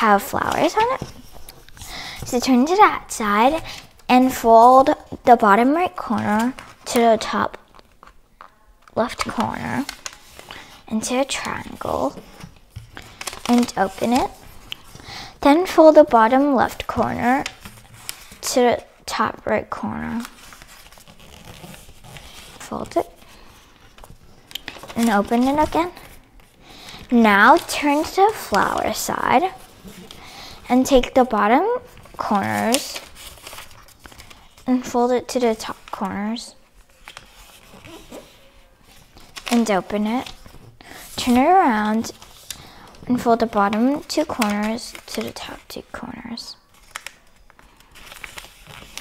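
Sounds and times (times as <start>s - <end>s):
paper rustling: 0.0s - 8.2s, 8.8s - 18.9s, 19.9s - 49.0s
paper crackles: 8.8s - 19.2s, 19.8s - 31.1s, 31.8s - 34.9s, 35.5s - 49.0s.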